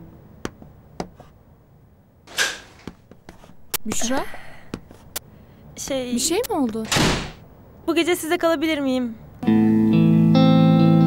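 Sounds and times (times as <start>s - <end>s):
door swinging open: 6.8s - 7.4s.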